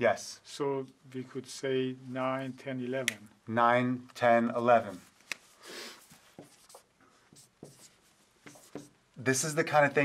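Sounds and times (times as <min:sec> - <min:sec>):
marker writing on whiteboard: 0:04.9 - 0:09.0.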